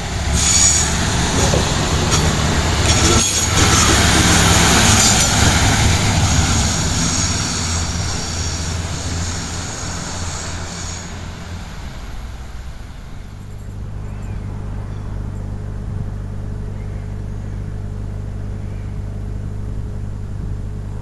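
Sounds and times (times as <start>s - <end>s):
train wheels rolling on rails: 0.0s - 14.5s
diesel engine drone: 0.0s - 21.0s.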